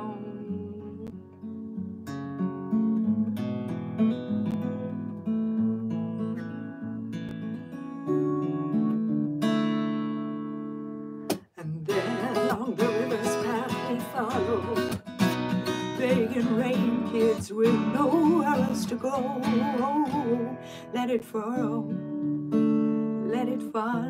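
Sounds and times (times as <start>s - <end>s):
acoustic guitar strummed and picked: 0.0s - 24.0s.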